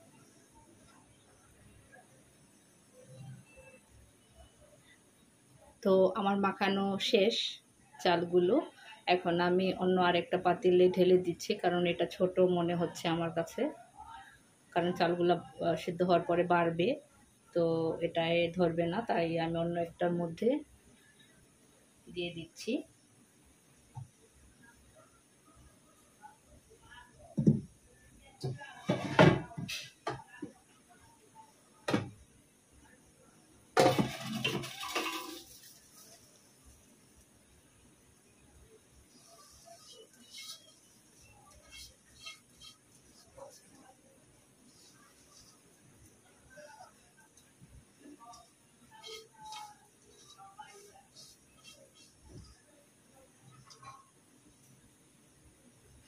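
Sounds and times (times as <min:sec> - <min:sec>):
pan and pot clattering: 0:33.8 - 0:35.6
rice scraped from pan: 0:39.1 - 0:43.6, 0:49.0 - 0:52.4.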